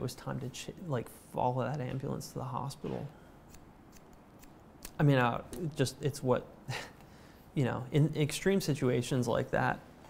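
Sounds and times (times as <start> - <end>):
scissors snipping hair: 3.4 - 5.0.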